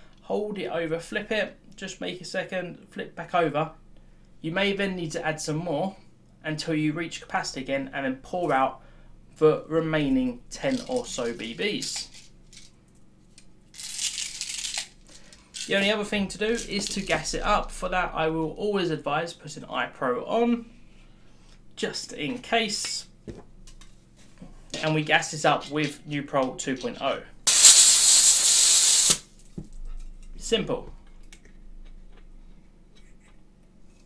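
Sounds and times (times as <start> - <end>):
plastic pellets rattling: 13.7 - 15.9
gas hissing from a can: 27.4 - 29.3.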